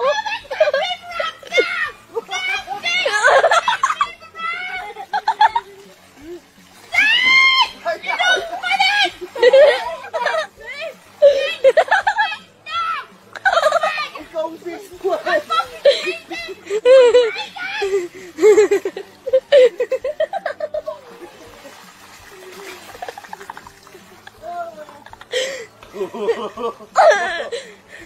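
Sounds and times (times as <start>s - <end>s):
people laughing excitedly: 0.0s - 12.5s, 13.3s - 14.3s, 14.9s - 28.0s
person cackling laughter: 9.3s - 10.5s, 15.8s - 21.2s, 22.9s - 27.7s.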